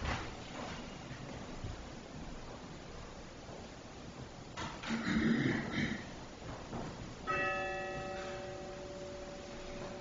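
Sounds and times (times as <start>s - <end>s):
bell ringing: 7.3s - 10.0s.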